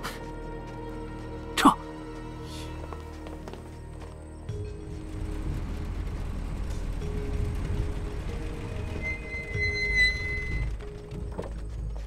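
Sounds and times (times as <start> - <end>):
background music: 0.0 - 12.0
car engine rumbling: 4.4 - 12.0.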